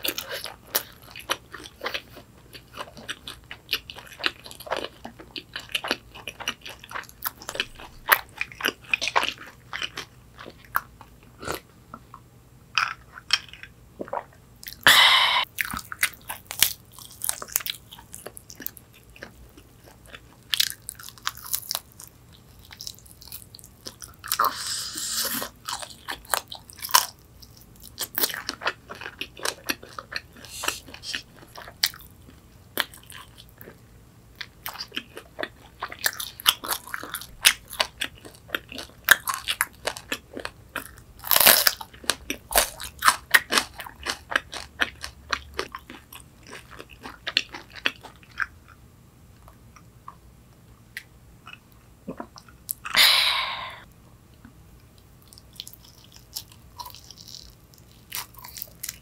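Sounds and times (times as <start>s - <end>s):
crisp crunching while eating: 0.0s - 11.6s, 15.4s - 33.8s, 34.4s - 48.8s, 55.2s - 59.0s.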